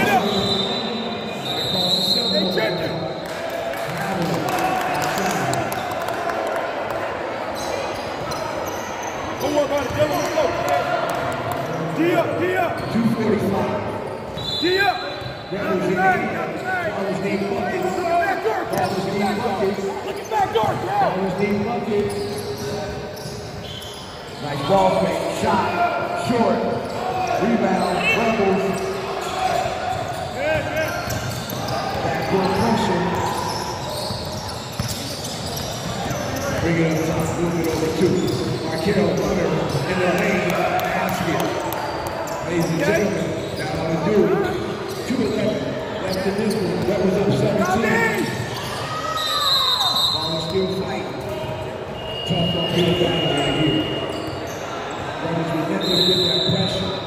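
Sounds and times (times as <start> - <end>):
players and spectators voices: 0.0 - 57.0.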